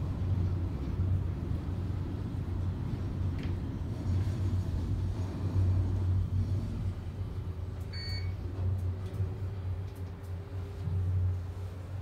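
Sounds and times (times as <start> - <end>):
elevator hum and rumble: 0.0 - 12.0
short high beep: 8.0 - 8.3.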